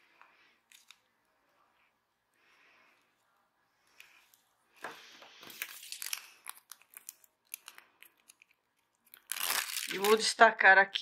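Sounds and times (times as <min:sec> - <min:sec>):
plastic strip rustling and crinkling: 0:00.1 - 0:01.2, 0:03.8 - 0:10.5.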